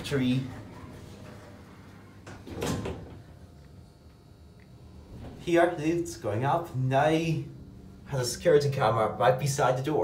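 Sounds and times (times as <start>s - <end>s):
lift doors closing: 0.5s - 3.3s.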